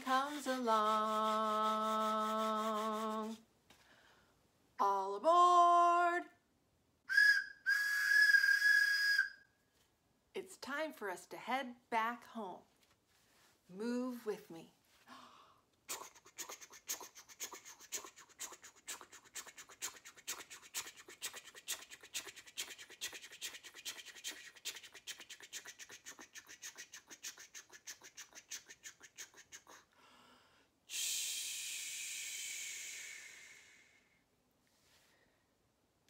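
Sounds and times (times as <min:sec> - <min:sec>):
woman making steam hiss: 0:30.9 - 0:34.0.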